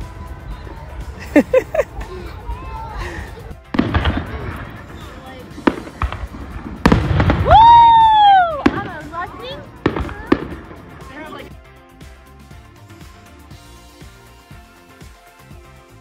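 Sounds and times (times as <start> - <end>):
firework bangs: 3.6 - 11.6
whistling firework: 3.7 - 11.2.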